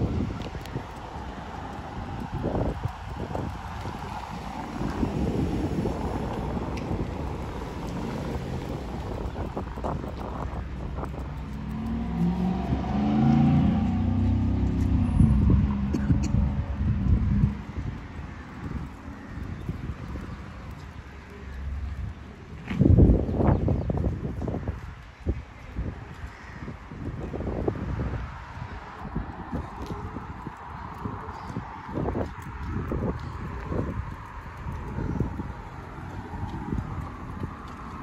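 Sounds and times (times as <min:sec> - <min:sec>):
cars driving past: 0:00.0 - 0:22.0
steady low rumble: 0:00.0 - 0:26.1, 0:27.0 - 0:38.0.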